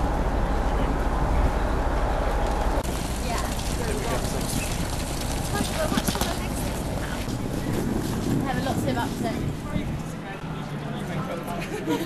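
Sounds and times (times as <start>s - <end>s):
indistinct voices outdoors: 0.0s - 12.0s.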